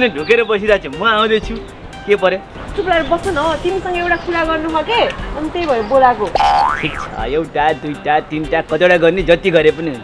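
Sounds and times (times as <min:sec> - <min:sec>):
cartoon boing sound effect: 0:06.4 - 0:07.2.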